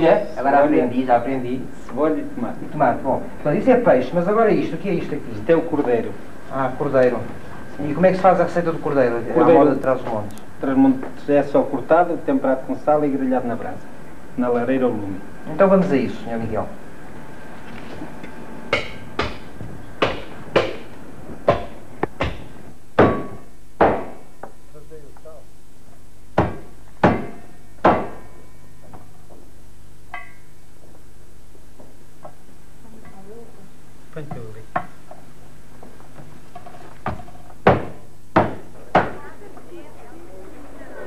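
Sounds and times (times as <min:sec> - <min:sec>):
steady low hum: 0:00.0 - 0:41.0
cleaver chopping on wooden board: 0:20.0 - 0:20.9, 0:21.5 - 0:24.2, 0:37.1 - 0:39.2.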